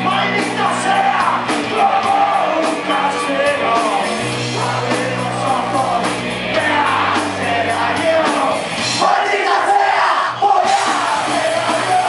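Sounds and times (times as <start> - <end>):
crowd shouting: 0.0 - 3.7, 6.6 - 12.0
punk rock band playing: 0.0 - 12.0.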